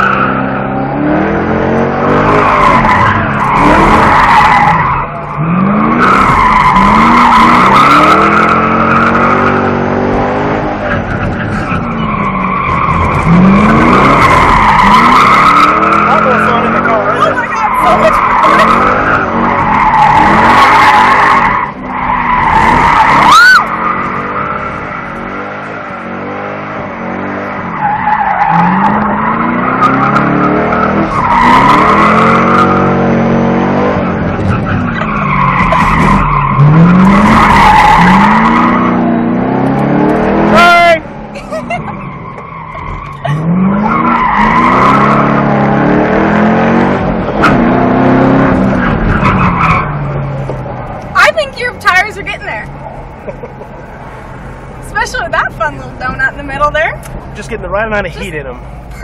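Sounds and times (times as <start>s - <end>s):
race car engine revving: 0.0s - 59.0s
tires squealing: 0.0s - 59.0s.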